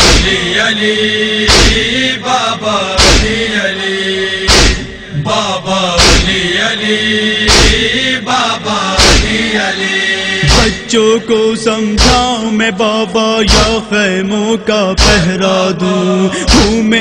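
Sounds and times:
heavy regular beat: 0.0s - 0.5s, 1.5s - 1.9s, 3.0s - 3.4s, 4.5s - 5.0s, 6.0s - 6.5s, 7.5s - 7.9s, 9.0s - 9.4s, 10.4s - 10.9s
voices chanting a refrain: 0.0s - 12.5s, 15.0s - 17.0s.

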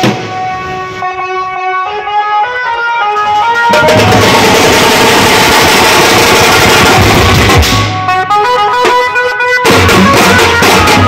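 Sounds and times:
street band drums: 0.0s - 1.0s, 3.2s - 11.0s.

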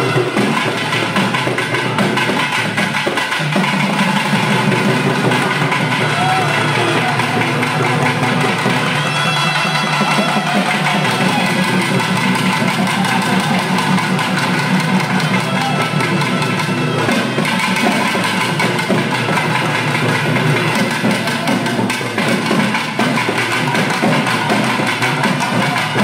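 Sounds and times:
loud fast drumming: 0.0s - 26.0s
other instruments playing: 0.0s - 26.0s.

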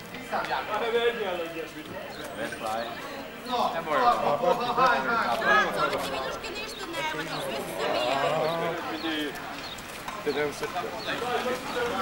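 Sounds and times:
people talking: 0.1s - 12.0s.

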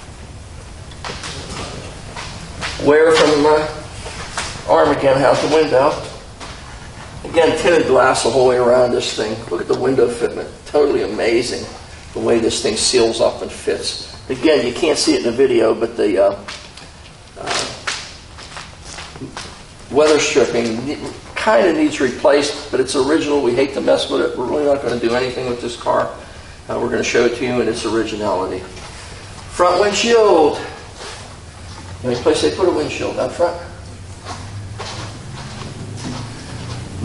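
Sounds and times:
low room hum: 0.0s - 37.0s
soft footsteps: 1.0s - 7.9s, 16.3s - 21.3s, 30.8s - 32.4s, 33.1s - 37.0s.

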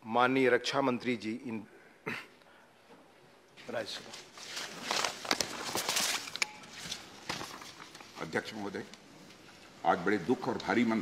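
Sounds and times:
papers rustling and knocks: 3.9s - 8.4s.

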